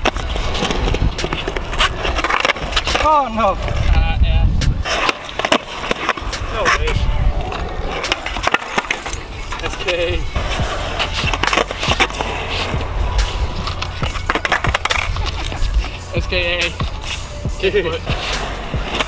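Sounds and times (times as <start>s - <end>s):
skateboard clacking and slapping down: 0.0s - 4.0s, 4.8s - 10.1s, 13.6s - 15.9s
skateboard wheels rumbling on concrete: 0.0s - 19.0s.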